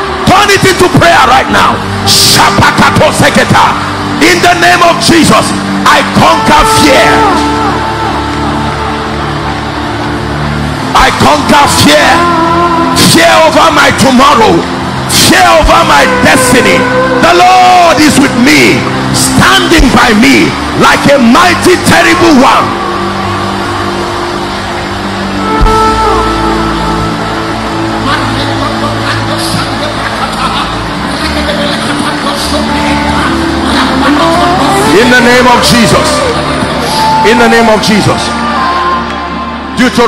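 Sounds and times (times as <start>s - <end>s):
congregation praying aloud: 0.0s - 25.4s, 27.7s - 40.0s
sustained keyboard chords: 0.0s - 40.0s.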